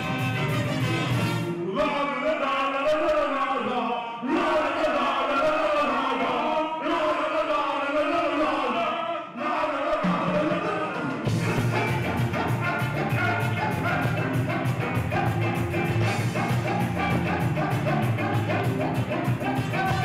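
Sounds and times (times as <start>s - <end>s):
ska band playing: 0.0s - 1.7s, 10.0s - 20.0s
horns: 0.0s - 2.0s, 9.4s - 20.0s
voices singing: 0.0s - 20.0s
drums and bass: 11.2s - 20.0s.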